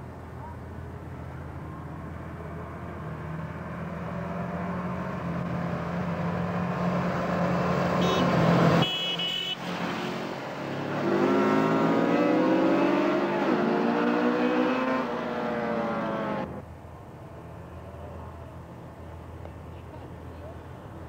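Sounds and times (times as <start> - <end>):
motorcycle engines accelerating: 9.6 - 16.6.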